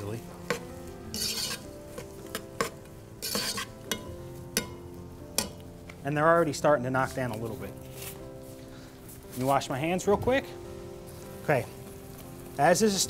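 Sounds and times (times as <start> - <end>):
food sizzling: 0.0 - 6.5, 10.6 - 13.0
spoon scraping a pot: 0.5 - 4.0
metal spoon tapping a pot: 2.3 - 4.8, 5.4 - 5.6.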